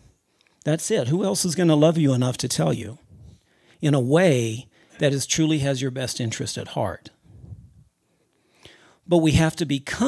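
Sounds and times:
man breathing: 3.0 - 3.8, 7.2 - 9.1
faint low sound: 7.1 - 8.0.

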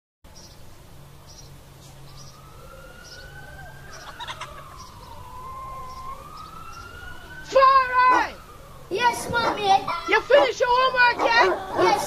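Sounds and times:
distant siren wailing: 0.7 - 12.0.

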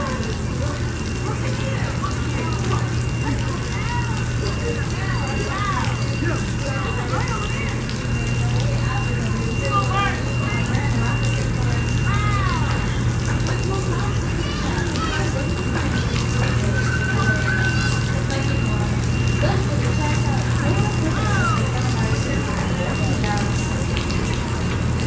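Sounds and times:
distant voices: 0.0 - 25.0.

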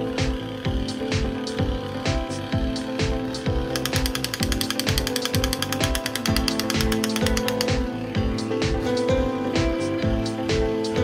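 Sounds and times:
background music with steady beat: 0.0 - 11.0
toy machine-gun rattle: 3.7 - 7.8.

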